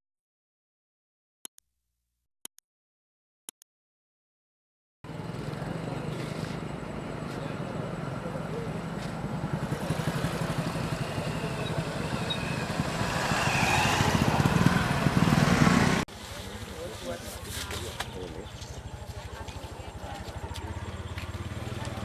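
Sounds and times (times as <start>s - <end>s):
motorcycle engine running: 5.1s - 22.0s.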